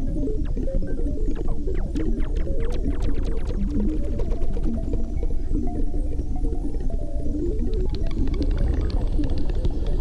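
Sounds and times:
synthesizer lines: 0:00.0 - 0:06.1.

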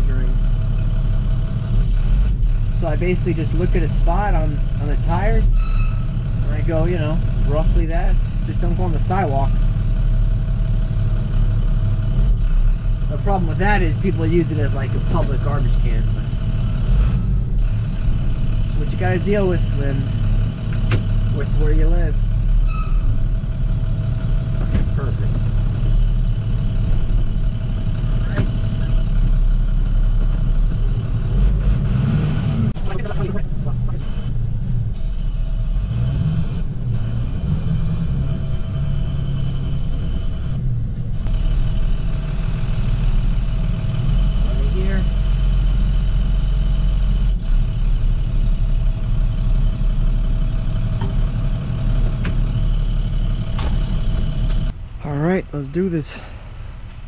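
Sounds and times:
diesel engine rumbling: 0:00.0 - 0:57.0
engine whine: 0:00.0 - 0:57.0
knocks and clunks: 0:20.5 - 0:21.3, 0:24.2 - 0:26.0, 0:26.7 - 0:29.2, 0:50.7 - 0:54.8.

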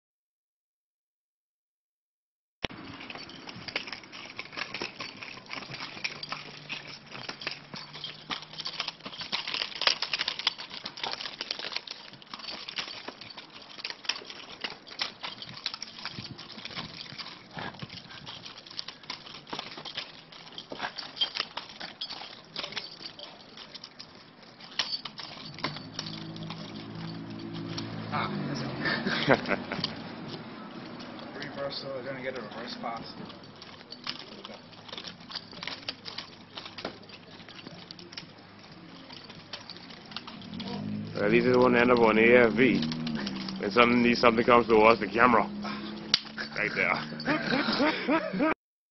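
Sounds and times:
nunchaku chain clicking and rattling: 0:02.7 - 0:48.6
man's voice: 0:41.2 - 0:42.9, 0:43.6 - 0:45.5, 0:46.6 - 0:47.1.

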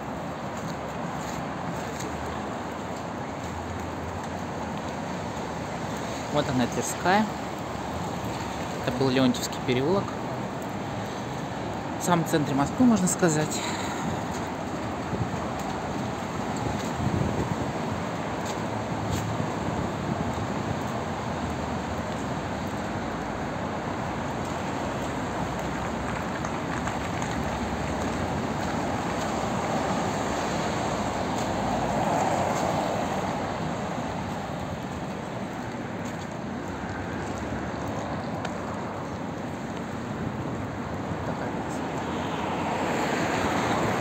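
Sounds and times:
city street traffic: 0:00.0 - 0:44.0
vehicle passing: 0:24.0 - 0:39.2, 0:40.8 - 0:44.0.

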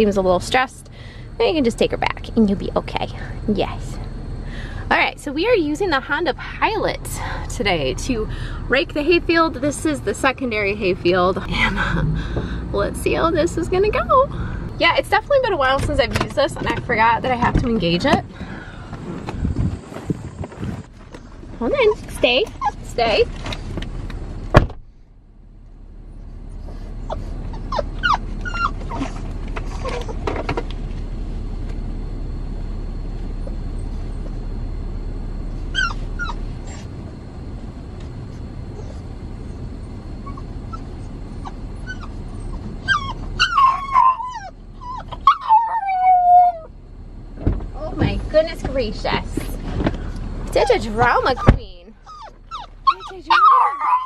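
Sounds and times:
vehicle driving rumble: 0:00.0 - 0:54.0
dog whining: 0:21.8 - 0:23.3, 0:27.0 - 0:30.3, 0:35.6 - 0:37.0, 0:38.7 - 0:46.7, 0:50.6 - 0:54.0.

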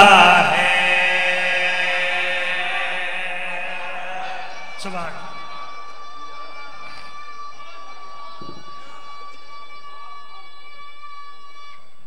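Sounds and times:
faint voices: 0:00.0 - 0:12.0
microphone feedback howl: 0:00.0 - 0:12.0.

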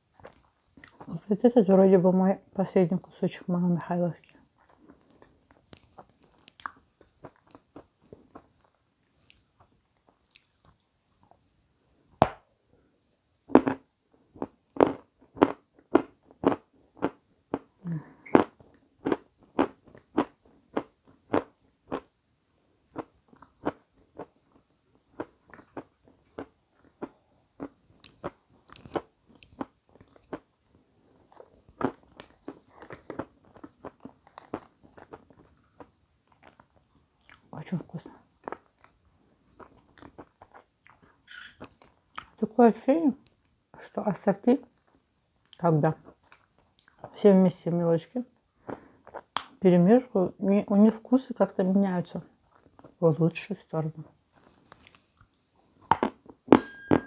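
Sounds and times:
person chewing crunchy cake: 0:00.0 - 0:01.2, 0:04.5 - 0:11.5, 0:13.5 - 0:22.2, 0:22.9 - 0:37.5, 0:38.1 - 0:42.4, 0:44.8 - 0:47.1, 0:48.5 - 0:49.4, 0:52.4 - 0:53.0, 0:54.1 - 0:56.5.

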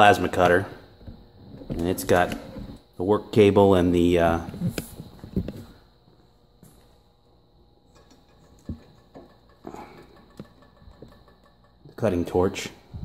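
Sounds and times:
faint high hum: 0:00.0 - 0:13.0
soft knocks and rustles of cables: 0:04.5 - 0:05.8.

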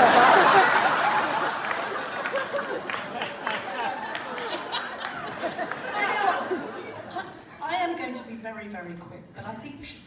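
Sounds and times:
overlapping chatter of voices: 0:03.0 - 0:08.4.

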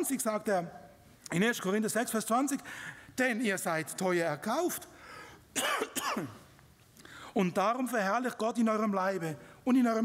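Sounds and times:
man clearing his throat: 0:05.6 - 0:06.4.

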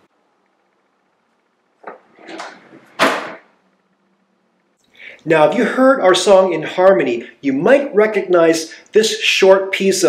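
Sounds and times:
drawer sliding rustle: 0:01.8 - 0:03.4
drawer click: 0:01.9 - 0:03.4.

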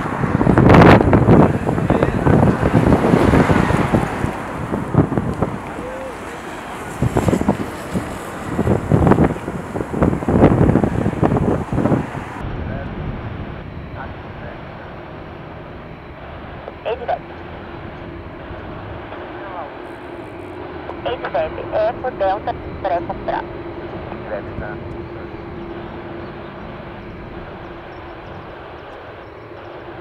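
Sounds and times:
engine whine: 0:00.0 - 0:30.0
jet engines running: 0:00.0 - 0:30.0
wind buffeting microphone: 0:00.0 - 0:30.0.

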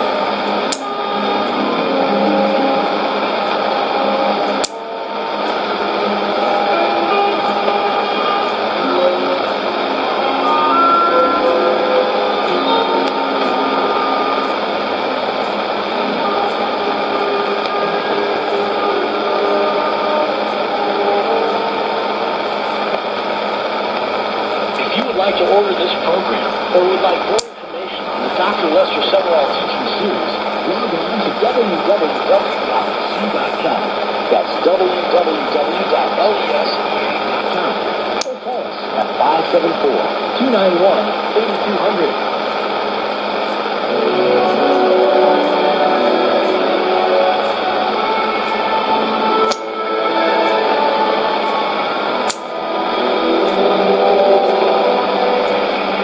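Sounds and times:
faint steady tones: 0:00.0 - 0:56.0
radio static hiss: 0:00.0 - 0:56.0
announcer speaking on radio: 0:24.7 - 0:42.4.

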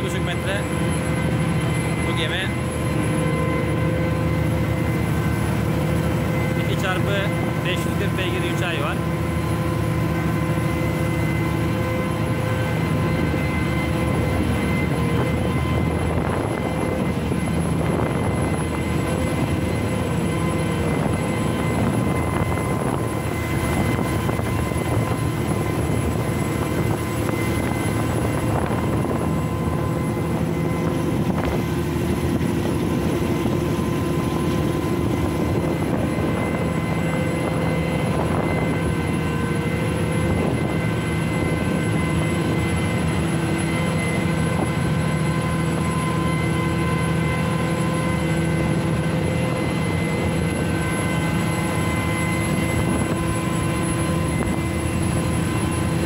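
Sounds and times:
marine diesel engines droning: 0:00.0 - 0:56.0
wake rushing along hull: 0:00.0 - 0:56.0.

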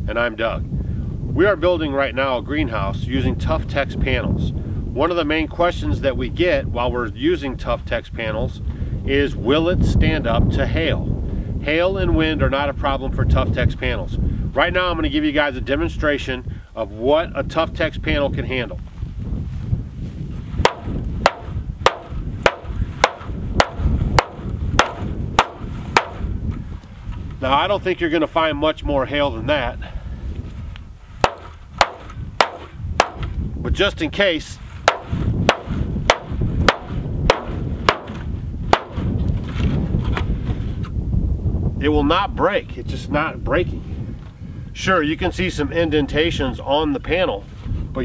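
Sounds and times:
hammer striking plastic panel: 0:20.6 - 0:26.2, 0:31.2 - 0:33.3, 0:34.9 - 0:39.1.

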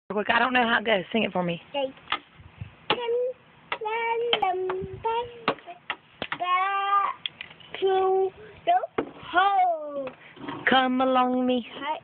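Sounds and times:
toddler singing: 0:02.9 - 0:10.1.

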